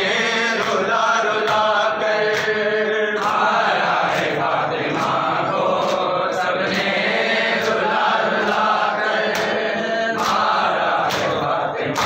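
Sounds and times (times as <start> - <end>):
men chanting a lament: 0.0 - 12.0.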